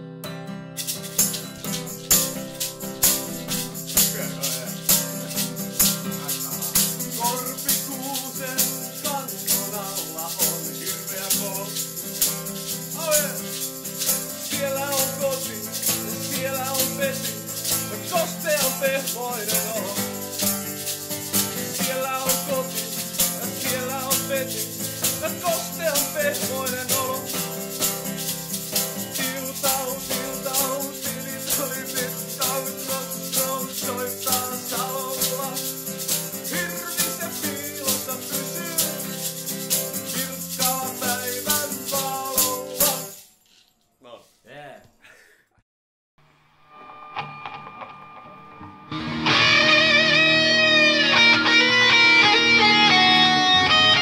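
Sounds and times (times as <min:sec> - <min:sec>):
acoustic guitar strumming: 0:00.0 - 0:43.2, 0:46.6 - 0:54.0
egg shaker rhythm: 0:00.8 - 0:43.3.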